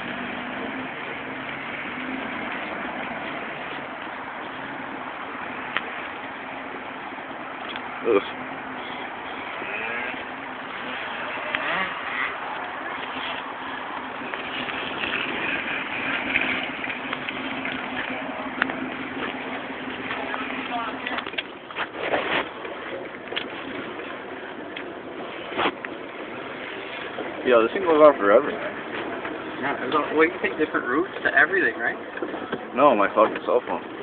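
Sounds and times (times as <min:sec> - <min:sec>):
car engine idling: 0:00.0 - 0:21.8.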